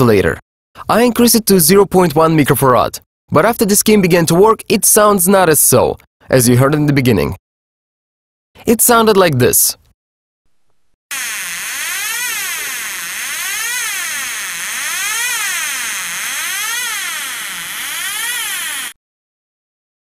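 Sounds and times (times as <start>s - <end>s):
buzzy electronic siren tone: 11.1s - 19.0s.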